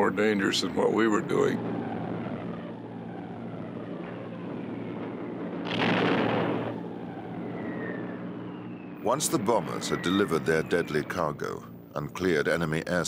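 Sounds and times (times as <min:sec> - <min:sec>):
bomber engines droning: 0:00.0 - 0:13.0
falling bombs whistling: 0:01.8 - 0:11.6
burst of rushing noise: 0:05.6 - 0:06.8.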